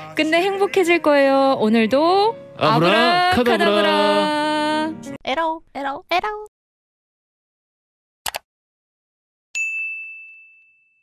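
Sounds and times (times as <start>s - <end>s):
notification bell ding: 9.6s - 11.0s.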